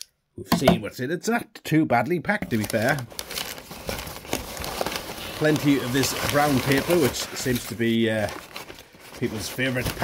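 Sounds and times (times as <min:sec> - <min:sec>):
packing paper crumpling: 0:02.4 - 0:10.0.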